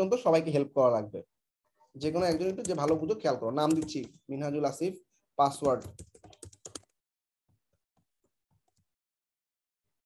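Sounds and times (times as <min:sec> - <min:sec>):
fast typing on keyboard: 0:02.0 - 0:04.2, 0:05.4 - 0:07.0.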